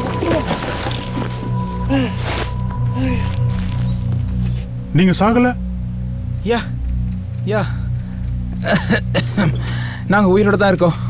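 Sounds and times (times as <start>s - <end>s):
film score: 0.0s - 11.0s.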